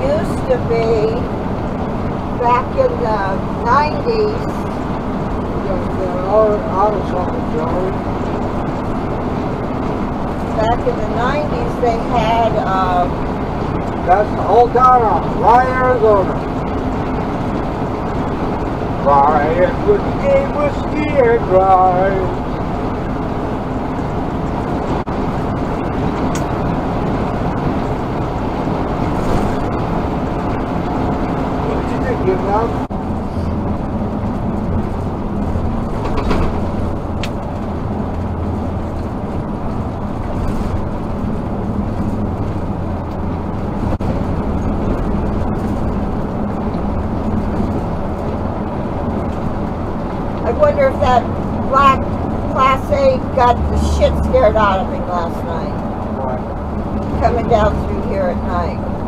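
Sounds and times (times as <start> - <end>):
engine and tyre road drone: 0.0 - 59.0.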